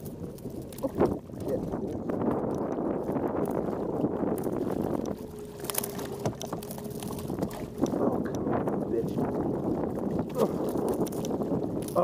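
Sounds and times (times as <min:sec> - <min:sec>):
water slapping against kayak hull: 0:00.0 - 0:12.0
wind buffeting microphone: 0:00.0 - 0:12.0.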